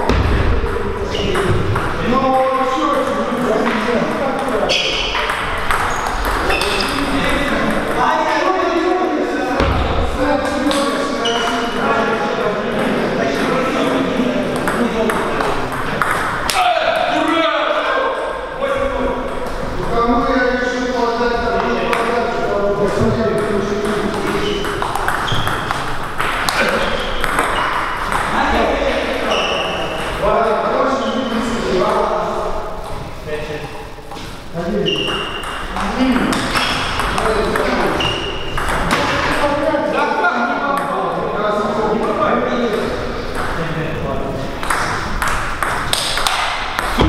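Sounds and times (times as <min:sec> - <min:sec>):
table tennis ball pinging: 0:00.0 - 0:08.1, 0:12.7 - 0:17.1, 0:23.0 - 0:30.3, 0:34.8 - 0:39.6, 0:42.7 - 0:43.6, 0:44.6 - 0:47.0
people talking in a hall: 0:00.0 - 0:47.0.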